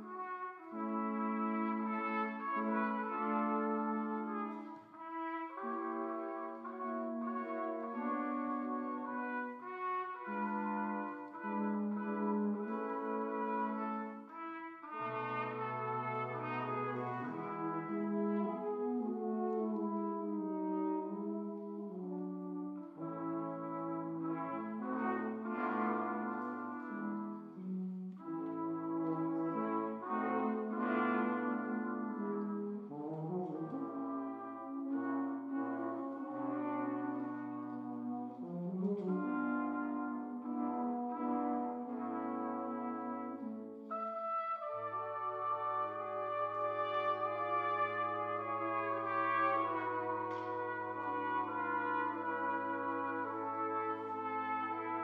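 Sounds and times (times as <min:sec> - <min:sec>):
bass brass low notes: 0:00.0 - 0:55.0
brass quintet playing: 0:00.0 - 0:55.0
cornet melody: 0:00.0 - 0:55.0
horn: 0:00.0 - 0:55.0
soprano flugelhorn: 0:00.0 - 0:55.0
trombone: 0:00.0 - 0:55.0.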